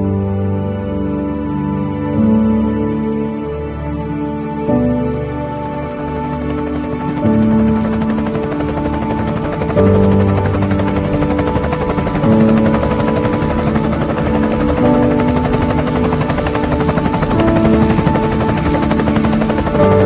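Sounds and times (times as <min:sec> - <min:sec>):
music with held notes: 0:00.0 - 0:20.0
helicopter rotor running: 0:05.1 - 0:20.0.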